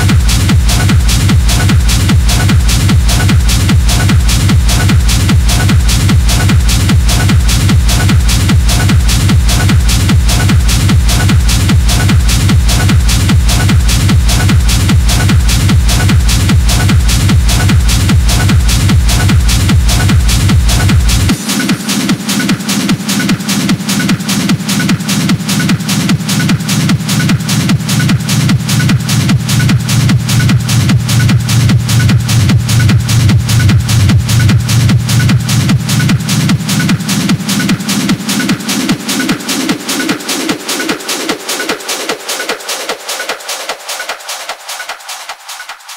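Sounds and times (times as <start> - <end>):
hard techno music: 0.0 - 45.9.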